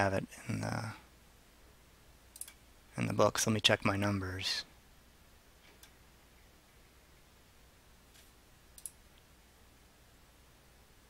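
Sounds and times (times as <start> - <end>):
computer mouse click: 2.3 - 2.6, 8.8 - 9.0.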